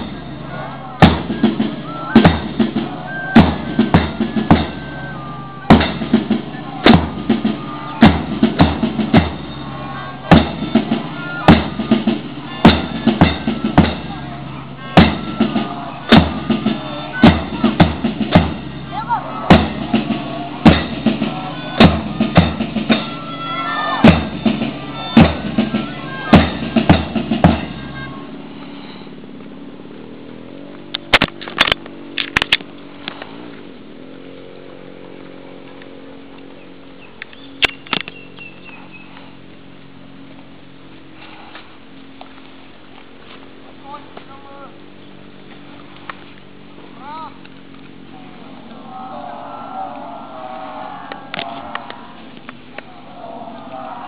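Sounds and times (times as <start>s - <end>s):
drum band playing: 0.0s - 28.2s, 48.9s - 54.0s
steady engine drone: 0.0s - 54.0s
bass drum strikes: 1.0s - 4.9s, 5.7s - 14.2s, 14.9s - 23.2s, 23.9s - 27.9s.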